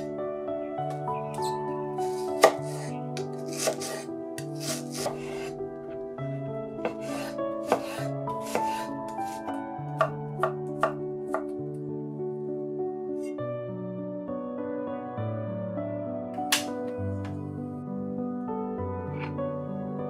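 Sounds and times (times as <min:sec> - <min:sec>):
knife dicing onion on wooden board: 0:02.0 - 0:02.9, 0:03.5 - 0:05.5, 0:06.8 - 0:11.5.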